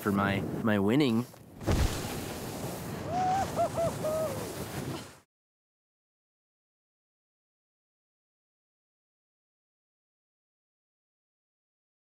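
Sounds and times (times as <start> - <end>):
person whooping: 3.1 - 4.5.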